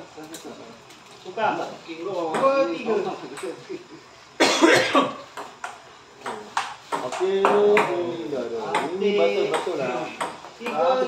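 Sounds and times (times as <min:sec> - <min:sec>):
person coughing or shouting: 0:04.4 - 0:05.2.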